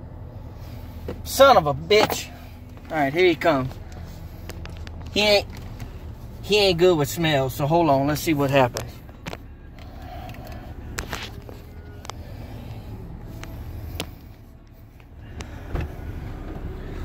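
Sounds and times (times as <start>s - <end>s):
low rumble inside car: 0.0s - 17.0s.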